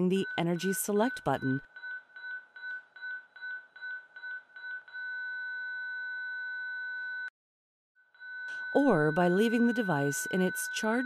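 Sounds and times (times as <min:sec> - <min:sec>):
defibrillator charging beeps: 0:00.0 - 0:07.3, 0:08.2 - 0:11.0
steady electronic tone: 0:08.2 - 0:11.0.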